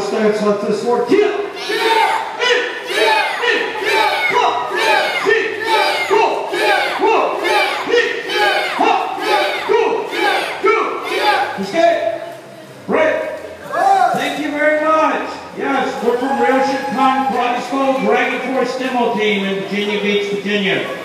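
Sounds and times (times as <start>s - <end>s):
group shouting in unison: 1.5s - 11.6s, 13.6s - 14.2s, 15.8s - 17.4s.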